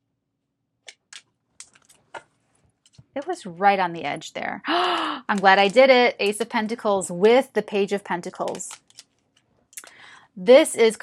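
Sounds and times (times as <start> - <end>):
cards being shuffled: 0.9 - 3.2, 4.9 - 6.4, 8.3 - 9.7.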